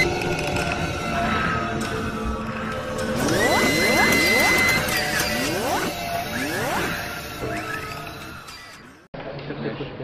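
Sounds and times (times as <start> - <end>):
rising sweeps: 2.1 - 8.4
steady high tone: 2.1 - 8.8
intro music: 2.9 - 8.3.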